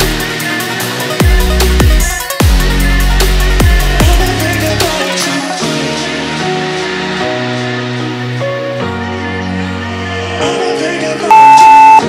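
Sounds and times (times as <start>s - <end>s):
long electronic beep: 11.3s - 12.0s.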